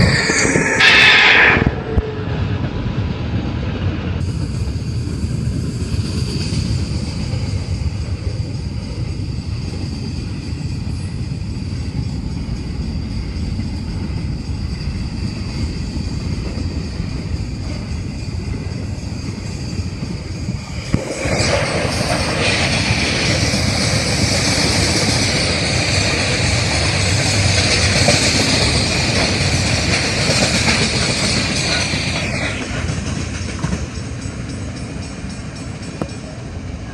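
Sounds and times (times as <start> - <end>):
train wheels rumbling on rails: 0.0 - 36.9.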